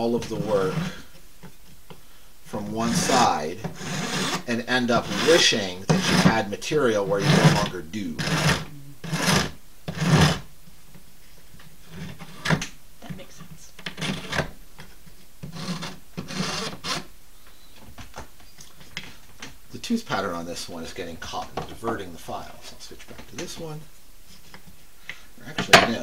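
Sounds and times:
hand file rasping on bone: 0:02.8 - 0:06.4, 0:07.2 - 0:10.4, 0:15.5 - 0:17.1.

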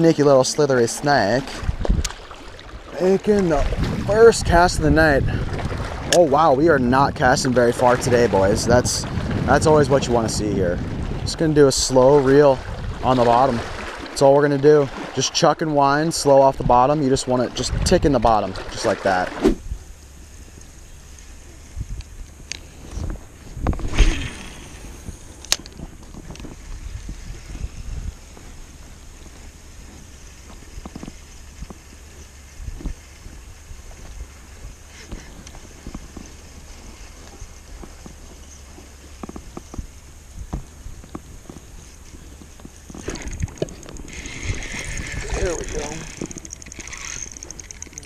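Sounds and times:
low steady rumble: 0:15.6 - 0:48.0
reel clicks: 0:20.5 - 0:27.6, 0:41.0 - 0:48.0.

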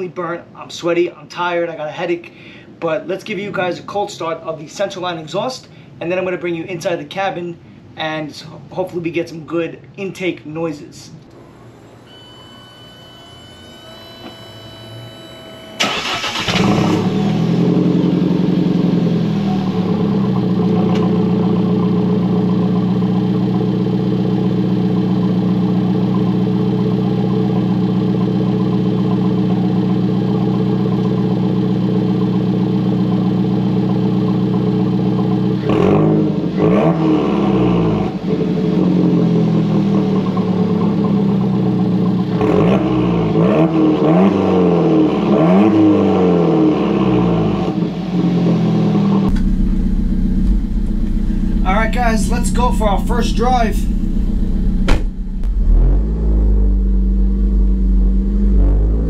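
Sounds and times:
car engine starting and idling: 0:11.3 - 0:59.0
engine revving: 0:13.7 - 0:59.0.

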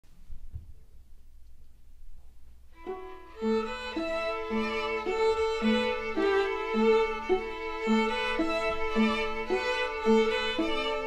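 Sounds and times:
violin melody: 0:02.7 - 0:11.0
string orchestra playing: 0:02.8 - 0:11.0.

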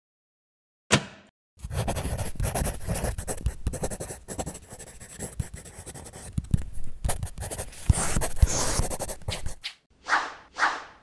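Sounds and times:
pen scratching on paper: 0:01.6 - 0:09.8.

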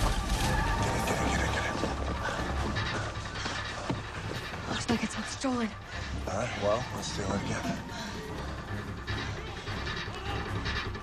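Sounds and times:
deep rumble: 0:00.0 - 0:11.0
film music: 0:00.0 - 0:11.0.

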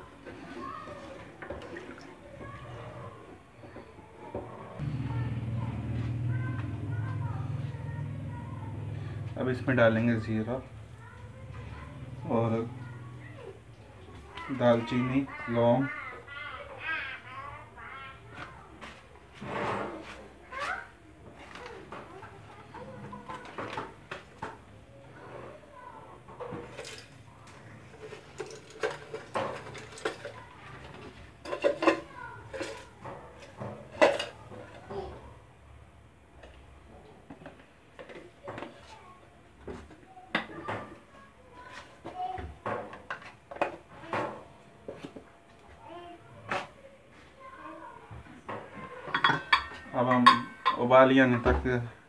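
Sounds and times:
pots and dishes clinking: 0:27.9 - 0:34.9, 0:48.6 - 0:50.9.

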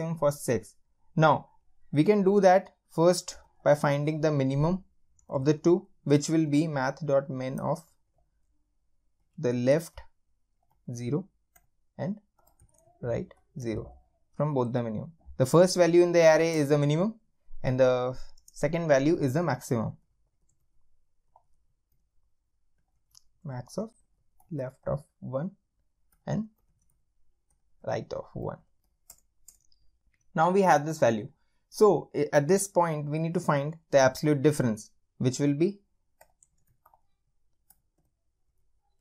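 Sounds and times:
computer keys typing: 0:09.3 - 0:14.4, 0:18.1 - 0:25.1, 0:25.8 - 0:30.6, 0:36.1 - 0:39.0
computer keyboard clicks: 0:29.0 - 0:29.8.

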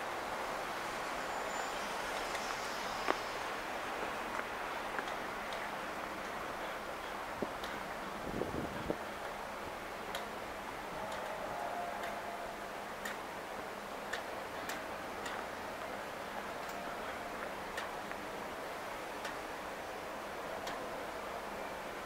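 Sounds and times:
city background hiss: 0:00.0 - 0:22.0.

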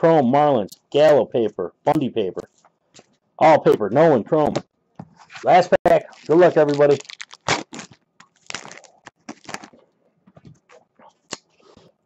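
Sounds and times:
cards rustling: 0:05.2 - 0:09.8
wrapper tearing and crinkling: 0:06.0 - 0:09.8.

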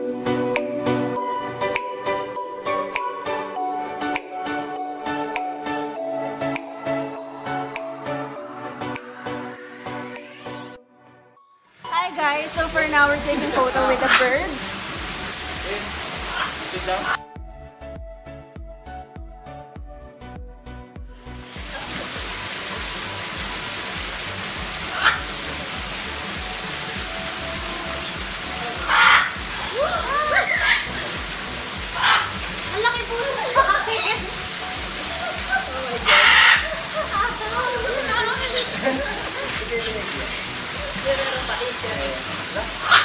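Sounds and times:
background music: 0:00.0 - 0:43.0
rushing water: 0:11.7 - 0:17.2, 0:21.2 - 0:43.0
people chattering and laughing: 0:12.8 - 0:14.7, 0:32.8 - 0:42.8
parrots screeching: 0:13.7 - 0:14.6, 0:16.2 - 0:17.2, 0:24.9 - 0:25.4, 0:28.0 - 0:31.2, 0:31.8 - 0:32.4, 0:36.0 - 0:36.8, 0:38.3 - 0:38.8, 0:42.7 - 0:43.0.

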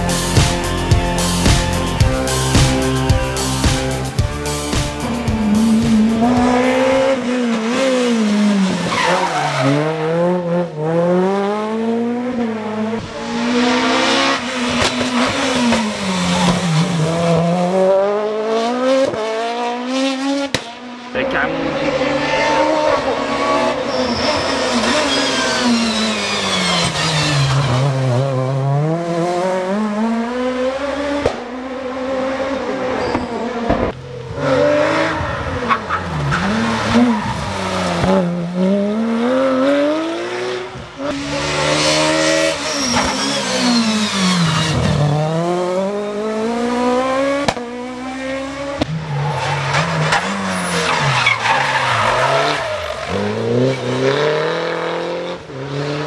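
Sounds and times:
rally car engines revving hard: 0:00.0 - 0:56.0
tyre squeal: 0:23.8 - 0:27.9, 0:32.9 - 0:33.4, 0:41.8 - 0:45.0, 0:49.2 - 0:53.2.

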